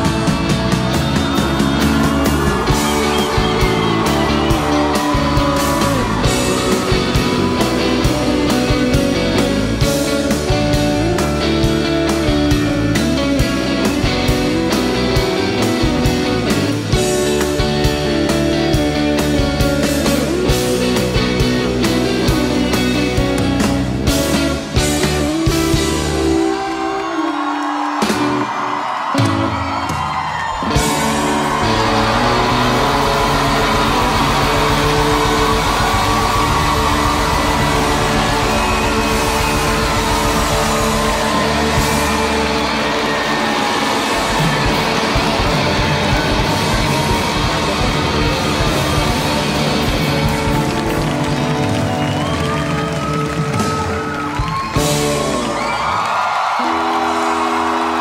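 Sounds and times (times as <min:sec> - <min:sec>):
audience whooping: 0:00.0 - 0:58.0
rock band playing live: 0:00.0 - 0:58.0.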